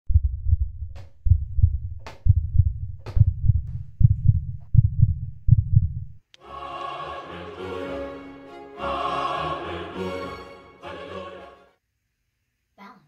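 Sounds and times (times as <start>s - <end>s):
deep heartbeat-like thumps: 0.1s - 6.2s.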